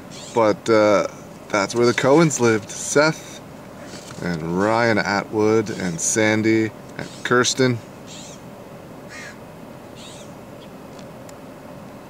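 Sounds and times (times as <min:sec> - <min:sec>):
bird calls: 0:00.0 - 0:00.5, 0:06.9 - 0:08.5, 0:09.1 - 0:10.8
outdoor background hiss: 0:00.0 - 0:12.0.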